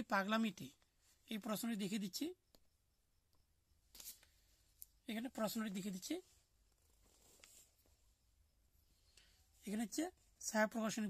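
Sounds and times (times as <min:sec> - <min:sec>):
person speaking: 0:00.0 - 0:02.5, 0:04.9 - 0:06.4, 0:09.5 - 0:11.0.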